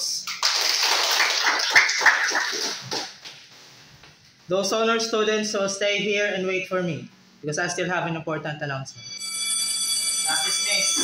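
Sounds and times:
people clapping: 0:00.0 - 0:03.4.

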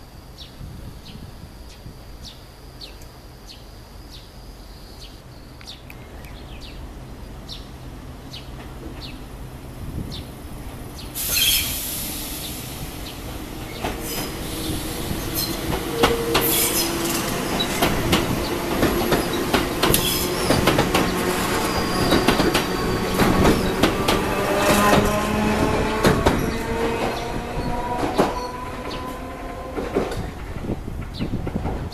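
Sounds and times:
wheel and motor squealing whine: 0:11.2 - 0:30.4.

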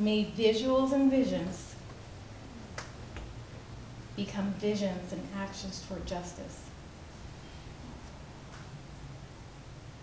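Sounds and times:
low steady room hum: 0:00.0 - 0:10.0.

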